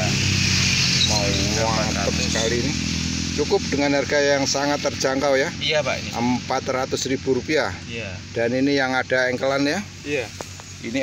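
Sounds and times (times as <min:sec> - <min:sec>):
hiss: 0:00.0 - 0:06.3, 0:09.6 - 0:11.0
engine hum: 0:00.0 - 0:11.0.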